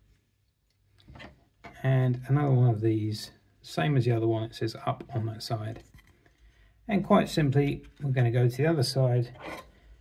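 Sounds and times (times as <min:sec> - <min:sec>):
man's voice: 0:06.9 - 0:09.3.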